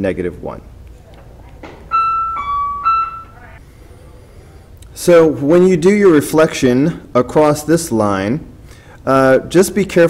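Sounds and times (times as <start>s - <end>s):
three-note electronic chime: 1.9s - 3.6s.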